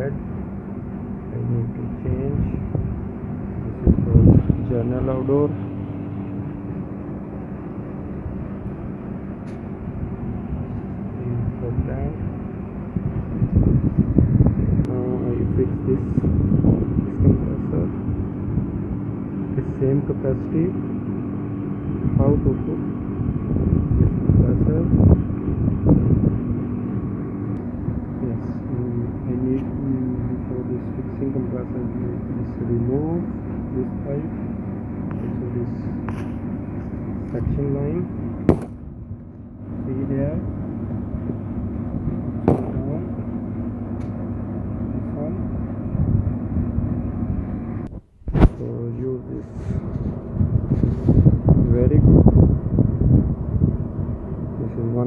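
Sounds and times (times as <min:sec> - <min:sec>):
steady mechanical hum: 0:00.0 - 0:55.0
voices talking: 0:14.8 - 0:18.0, 0:35.1 - 0:36.2.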